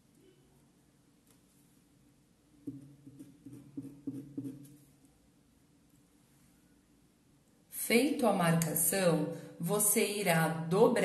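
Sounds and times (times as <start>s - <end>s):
pencil scraping on fabric: 2.7s - 4.9s.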